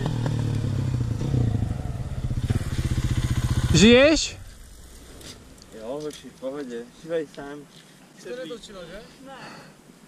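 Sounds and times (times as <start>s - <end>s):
motorcycle engine idling: 0.0s - 5.8s.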